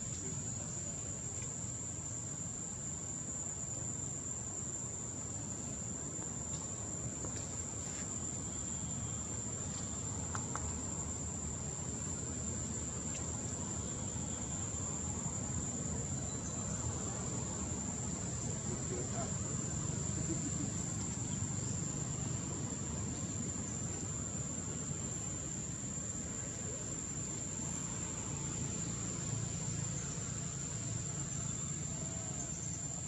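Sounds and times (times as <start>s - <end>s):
insects trilling: 0.0s - 33.0s
low background hiss: 0.0s - 33.0s.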